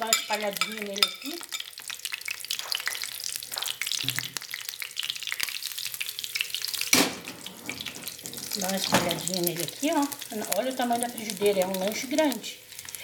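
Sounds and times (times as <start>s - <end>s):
spoon scraping pan: 0.0s - 1.7s, 7.2s - 9.7s
batter sizzling in frying pan: 0.0s - 13.0s.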